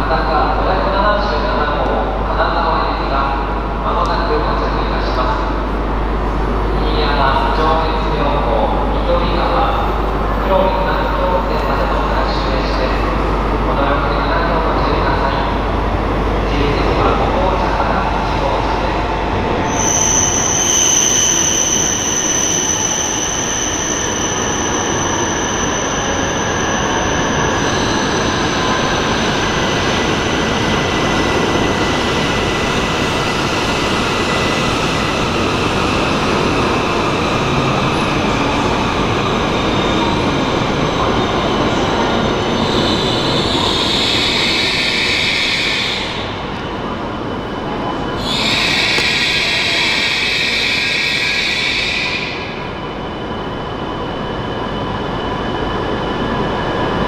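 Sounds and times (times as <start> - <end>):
train rushing rumble: 0.0 - 57.0
high steady squeal: 16.5 - 30.0, 48.2 - 52.7.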